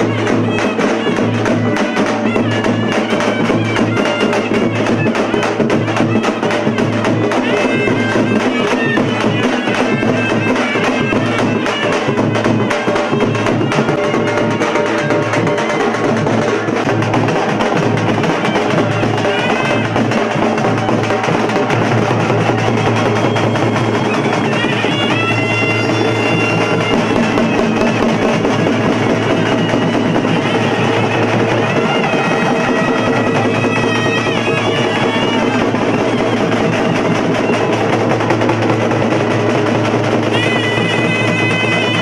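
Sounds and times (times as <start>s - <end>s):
street drums beaten with sticks: 0.0s - 42.0s
wind instrument high melody: 0.0s - 42.0s.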